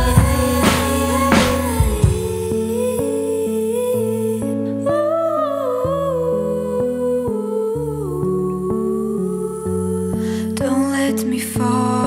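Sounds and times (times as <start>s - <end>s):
low bass notes: 0.0s - 7.2s.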